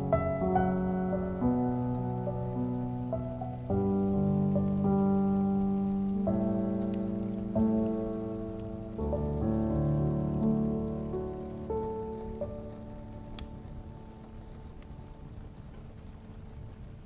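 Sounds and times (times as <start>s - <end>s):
gentle solo piano music: 0.0s - 17.0s
raindrop ticks: 0.0s - 17.0s
steady rain: 0.0s - 17.0s.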